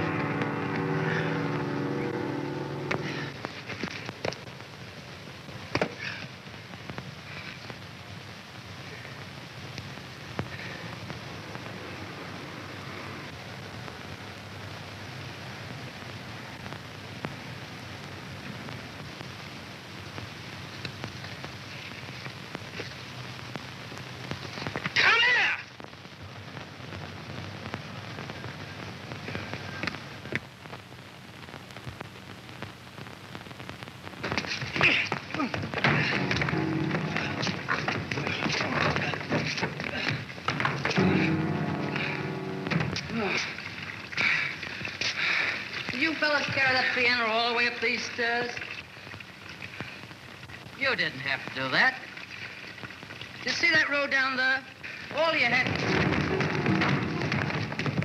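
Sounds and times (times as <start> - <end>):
loud wavering pitched sound: 0.0 - 3.3
music: 0.0 - 4.0, 35.8 - 39.9, 40.5 - 43.4, 55.6 - 58.0
crackling film soundtrack hiss: 0.0 - 58.0.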